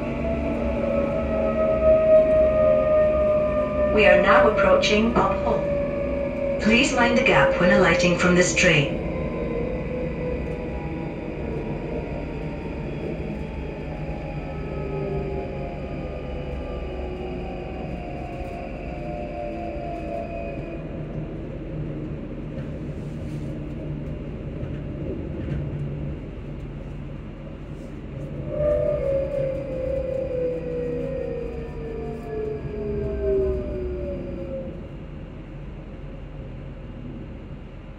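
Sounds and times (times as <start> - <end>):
train carriage rumble: 0.0 - 37.9.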